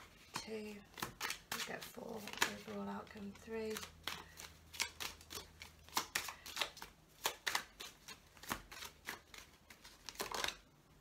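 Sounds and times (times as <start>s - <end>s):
cards being shuffled: 0.0s - 10.7s.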